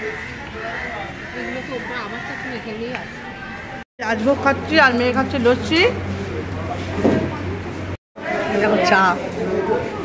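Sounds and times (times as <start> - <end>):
restaurant chatter: 0.0 - 10.0.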